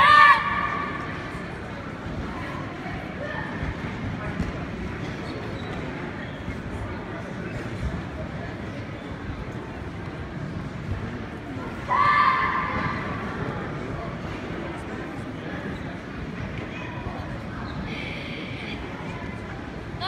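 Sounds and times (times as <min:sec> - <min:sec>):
crowd murmur: 0:00.0 - 0:20.0.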